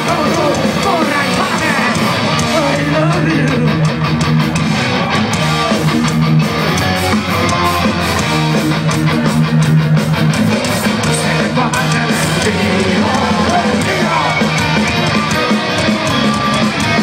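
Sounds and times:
punk rock band playing: 0.0s - 17.0s
sustained bass notes: 0.0s - 17.0s.

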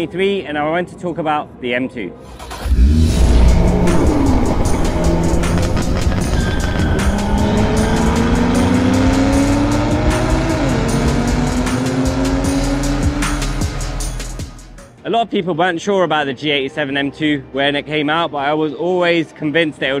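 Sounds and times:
car engine revving: 2.3s - 14.6s
loud low hit: 2.7s - 11.2s
music with a steady beat: 3.8s - 15.0s
tyre squeal: 6.0s - 8.4s.

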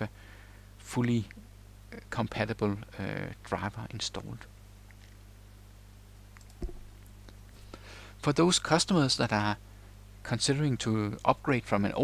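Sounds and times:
faint recording hiss: 0.0s - 12.0s
low electrical hum: 0.0s - 12.0s.

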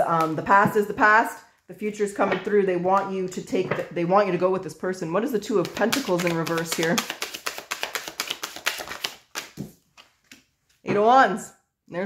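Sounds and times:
cards being shuffled: 5.5s - 10.8s.

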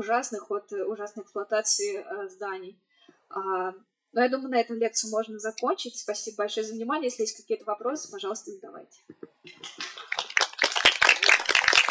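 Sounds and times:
audience applause: 9.5s - 11.9s.

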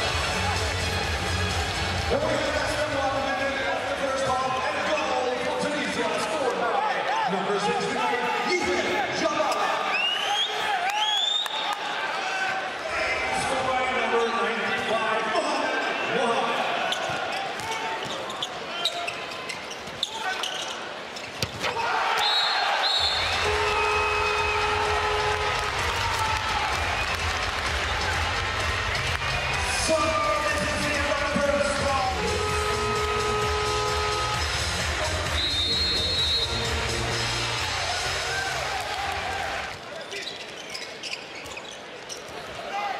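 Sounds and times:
voices echoing in hall: 2.0s - 22.8s
ball bouncing on indoor court: 21.2s - 21.8s
sharp rising shoe squeaks: 40.1s - 42.2s.

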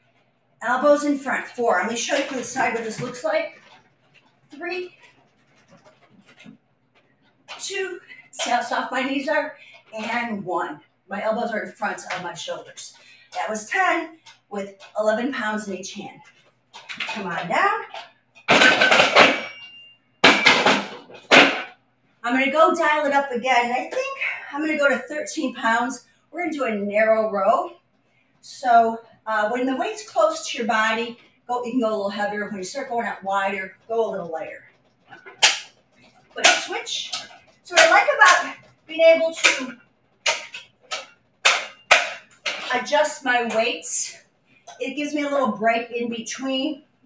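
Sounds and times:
dumbbells clicking: 33.6s - 43.7s.

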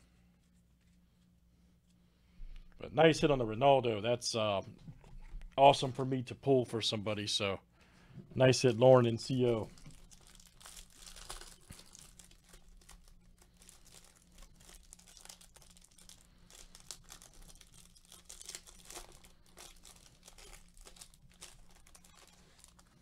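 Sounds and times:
plastic sleeve and cards rustling: 8.6s - 23.0s.

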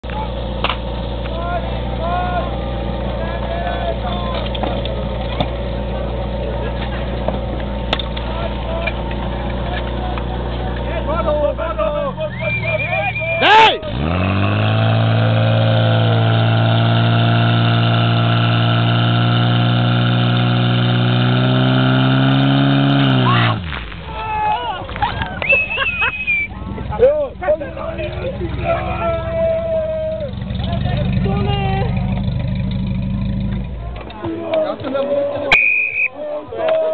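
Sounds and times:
engine drone: 0.0s - 34.2s
people shouting: 11.3s - 14.0s, 23.2s - 25.0s, 28.5s - 30.4s, 34.2s - 36.9s.

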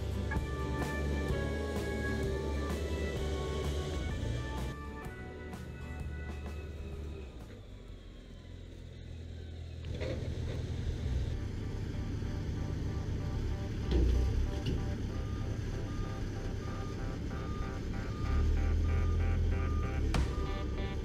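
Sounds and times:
music: 0.0s - 7.6s, 17.4s - 21.0s
diesel engine rumbling: 0.0s - 21.0s.

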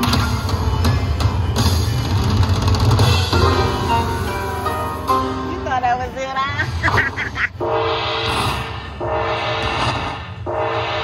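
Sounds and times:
slot machine jingle: 3.1s - 6.8s.

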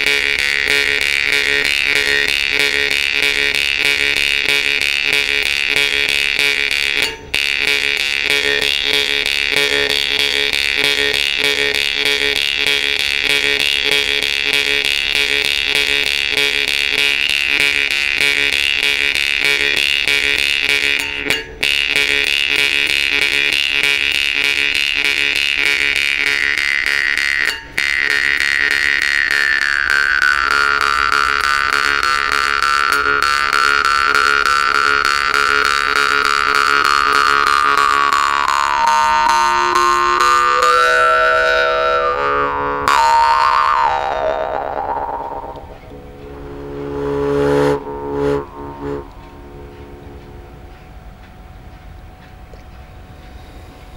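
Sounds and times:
jaw harp plucking over a drone: 0.0s - 53.9s.

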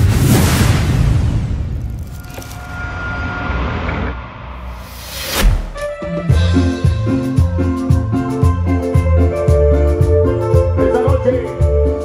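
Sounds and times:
deep rumbling boom: 0.0s - 5.8s.

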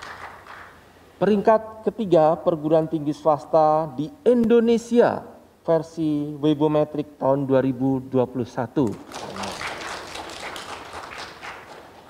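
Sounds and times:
audience clapping: 0.0s - 0.8s, 8.9s - 12.0s.

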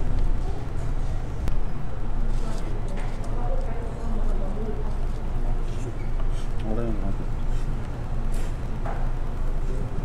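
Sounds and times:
low hum: 0.0s - 3.6s.

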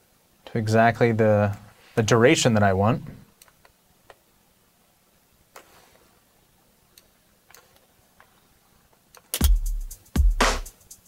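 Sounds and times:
electronic drum loop: 9.4s - 11.0s.

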